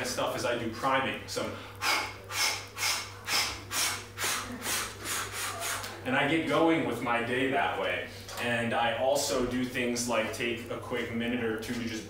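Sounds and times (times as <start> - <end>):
man breathing forcefully: 1.6 - 6.0.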